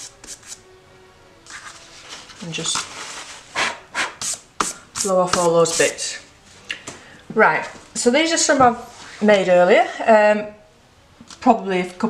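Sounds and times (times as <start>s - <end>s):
paper towel being scrunched: 1.5s - 3.5s.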